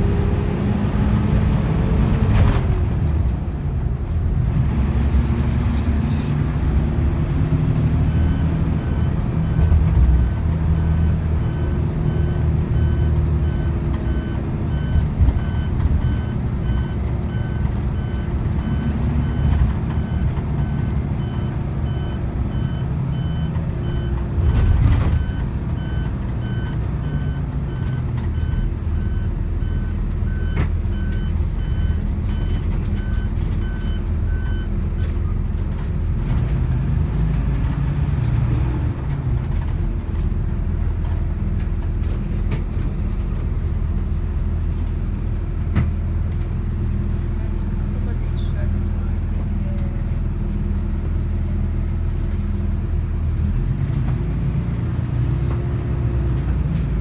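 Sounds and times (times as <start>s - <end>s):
bus engine and road rumble: 0.0s - 57.0s.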